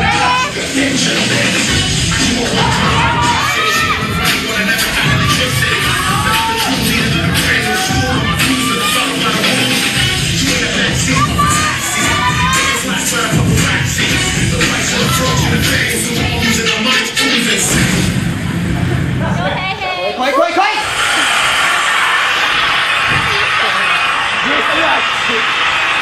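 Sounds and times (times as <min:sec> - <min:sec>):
dance music with steady beat: 0:00.0 - 0:19.4
crowd shouting and cheering: 0:00.0 - 0:26.0.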